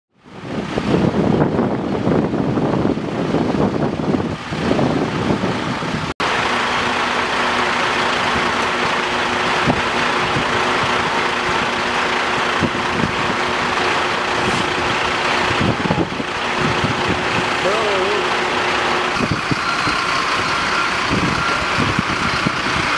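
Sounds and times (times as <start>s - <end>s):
heavy diesel engines idling: 1.4s - 22.9s.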